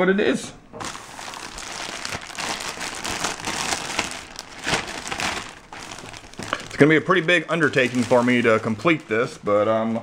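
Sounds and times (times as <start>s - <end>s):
plastic bag crinkling: 0.8s - 9.4s.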